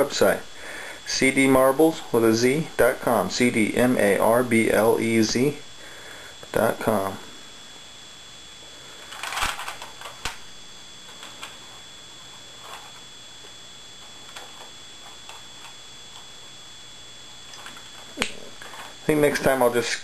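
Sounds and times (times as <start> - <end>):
faint high-pitched whine: 0.0 - 20.0.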